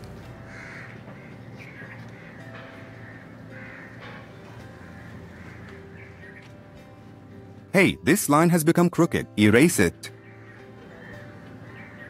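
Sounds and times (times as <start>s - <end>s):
crow cawing: 0.4s - 6.6s, 10.1s - 12.0s.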